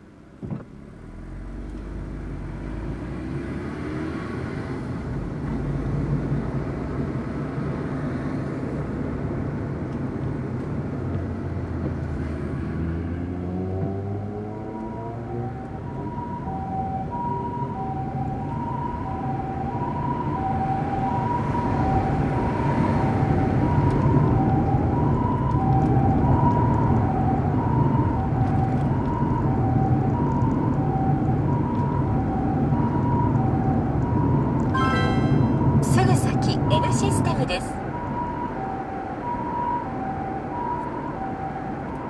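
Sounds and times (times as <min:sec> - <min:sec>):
car engine and road noise: 0:00.0 - 0:42.0
two-tone ambulance siren: 0:12.8 - 0:42.0.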